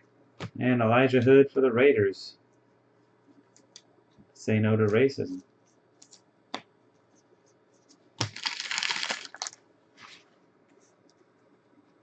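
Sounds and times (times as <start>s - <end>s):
foil wrapper crinkling: 8.2s - 10.2s.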